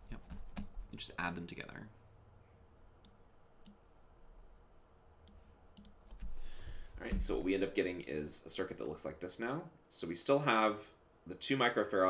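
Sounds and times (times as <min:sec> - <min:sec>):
faint sharp computer clicks: 0:05.2 - 0:06.0.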